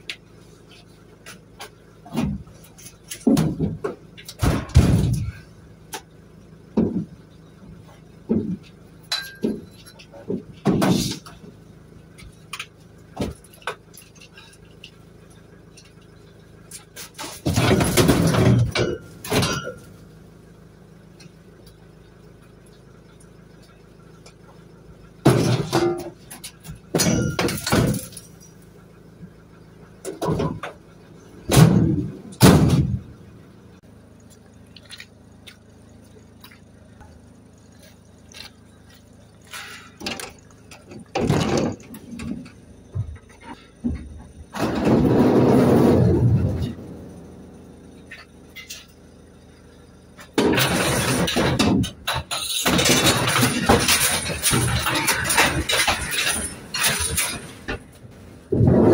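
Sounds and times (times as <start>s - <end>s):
metal scrap clanking: 1.2s - 5.6s, 8.3s - 11.6s, 12.2s - 20.1s, 25.2s - 29.0s, 30.0s - 33.4s, 37.6s - 58.9s.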